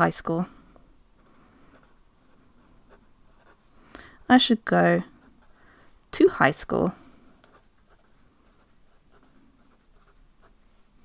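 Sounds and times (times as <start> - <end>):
pen writing on paper: 1.2 - 3.6, 7.4 - 10.5.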